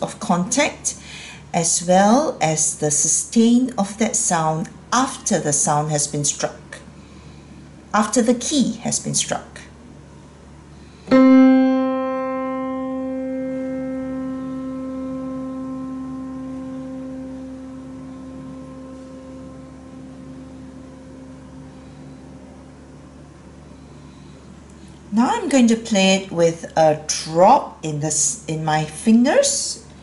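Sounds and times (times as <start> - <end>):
piano note ringing: 11.1 - 24.6.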